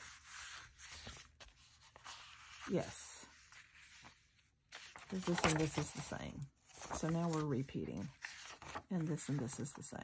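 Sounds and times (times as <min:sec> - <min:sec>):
paper sheets rustling: 0:00.0 - 0:10.0.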